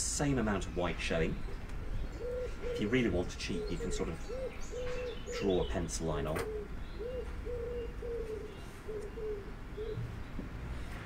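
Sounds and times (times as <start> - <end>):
bird calling low notes: 0.5 - 10.2.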